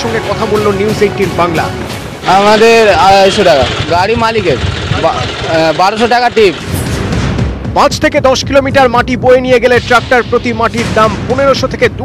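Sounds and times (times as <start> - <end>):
man speaking: 0.0 - 6.7, 7.8 - 12.0
vehicle engine rumble: 0.1 - 7.7.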